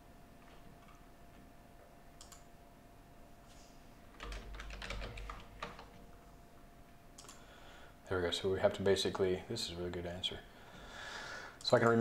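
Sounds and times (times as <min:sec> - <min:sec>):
typing on computer keyboard: 0:04.2 - 0:06.0.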